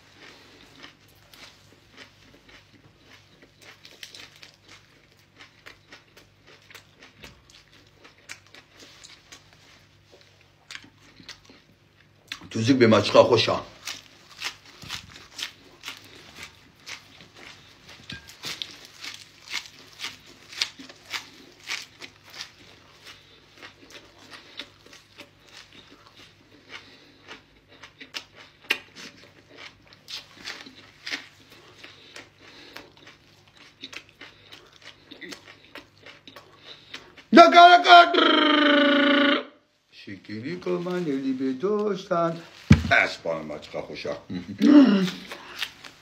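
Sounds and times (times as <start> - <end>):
person chewing crunchy food: 0.0 - 37.3, 42.7 - 46.0.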